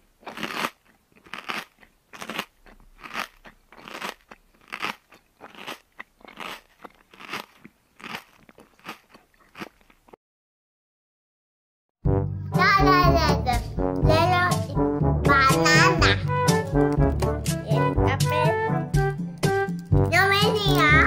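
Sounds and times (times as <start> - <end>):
child chewing crunchy food: 0.0 - 10.2, 16.2 - 17.8, 19.0 - 21.0.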